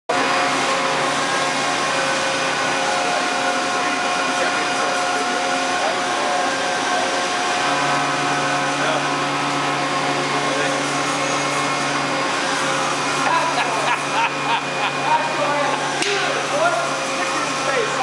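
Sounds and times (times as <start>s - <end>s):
lower machine hum: 0.1s - 18.0s
machinery humming: 0.1s - 18.0s
machines whining: 0.1s - 18.0s.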